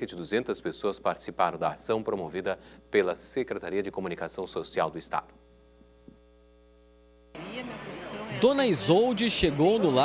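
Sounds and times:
electrical mains hum: 0.0s - 10.0s
outdoor background hiss: 0.0s - 10.0s.

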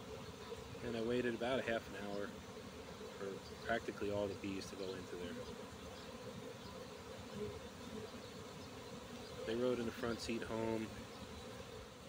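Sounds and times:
bee swarm buzzing: 0.0s - 12.0s.

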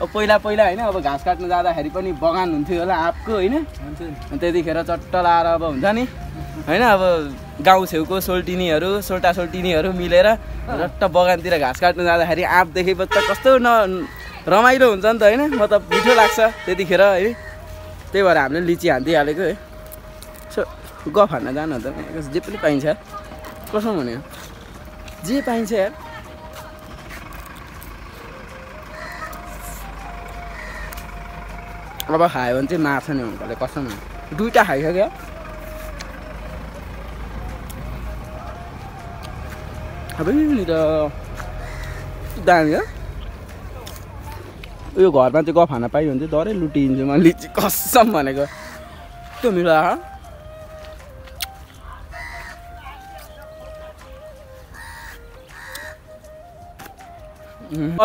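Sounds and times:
motor vehicle engine rumble: 0.0s - 58.0s
chicken calling: 13.9s - 14.6s, 15.4s - 18.0s, 27.5s - 32.1s, 41.5s - 43.2s, 48.4s - 49.6s, 51.9s - 53.4s, 54.6s - 56.1s.

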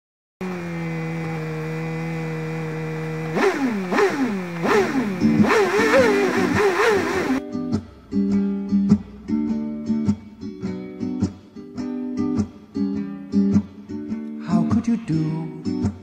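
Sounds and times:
engine idling and revving: 0.4s - 8.0s
acoustic guitar strumming: 4.6s - 14.8s.

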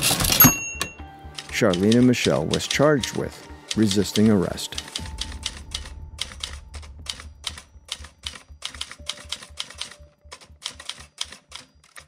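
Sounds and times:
typewriter keys clacking: 0.0s - 2.6s, 7.5s - 12.0s
low hum: 4.9s - 9.1s.

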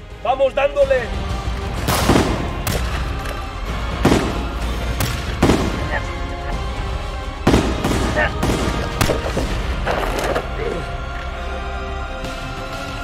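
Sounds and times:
background music: 0.0s - 13.0s
pistol shots with echo: 1.9s - 3.0s, 7.5s - 9.5s.

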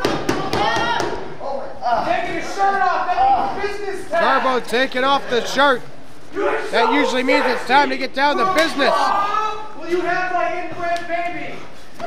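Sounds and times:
voices calling out: 0.3s - 11.6s.

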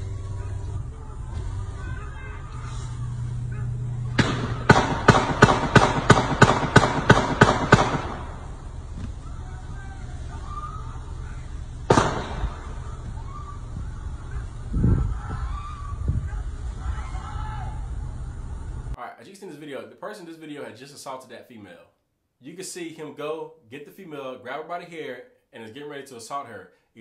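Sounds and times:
handgun shots: 4.2s - 8.4s, 11.9s - 12.6s.

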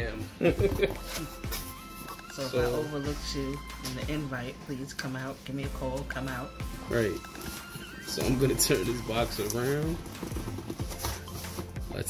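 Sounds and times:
background music: 0.0s - 12.0s
cardboard box scraping and rustling: 7.0s - 11.9s.

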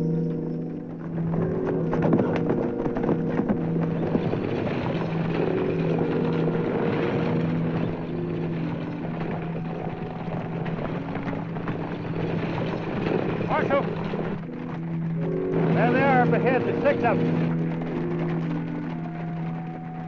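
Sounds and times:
dramatic orchestral score: 0.0s - 20.0s
horses galloping: 0.0s - 20.0s.

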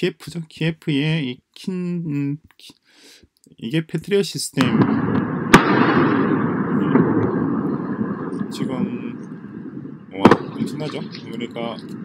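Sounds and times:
missile launches rumbling: 4.6s - 12.0s.

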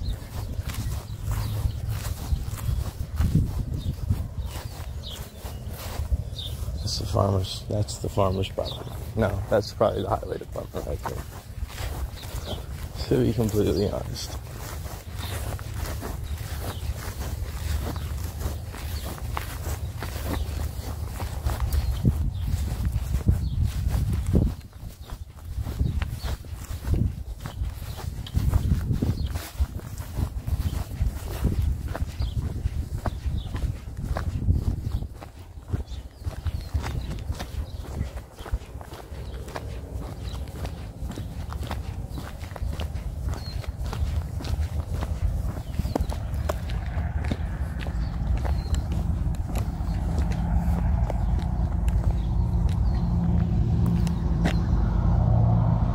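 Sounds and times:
footsteps on pavement: 0.0s - 55.9s
steady low hum: 38.7s - 55.9s
low rumble: 44.3s - 55.9s.

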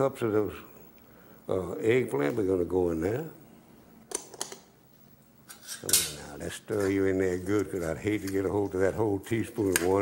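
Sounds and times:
person speaking: 5.8s - 10.0s.

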